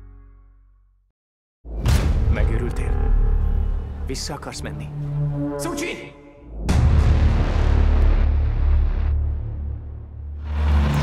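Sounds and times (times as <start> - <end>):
deep bass hit: 1.7 - 4.1, 6.5 - 11.0
dark orchestral score: 1.8 - 11.0.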